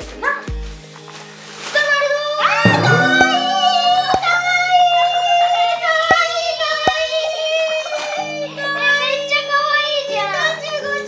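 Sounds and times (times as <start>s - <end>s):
plucked guitar: 2.6s - 4.9s
high sustained singing: 2.7s - 5.0s.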